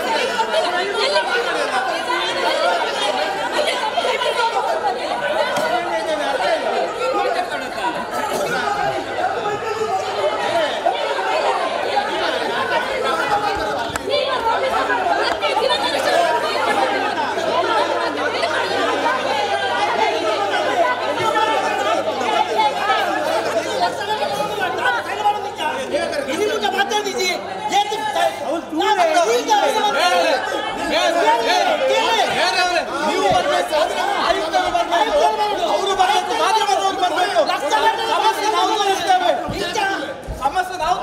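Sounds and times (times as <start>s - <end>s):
overlapping voices in echoing hall: 0.0s - 41.0s.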